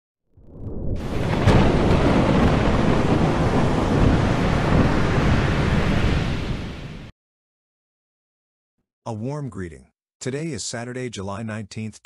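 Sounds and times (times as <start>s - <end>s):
thunderclap: 0.4s - 7.1s
wind: 0.7s - 7.1s
waves: 1.0s - 7.1s.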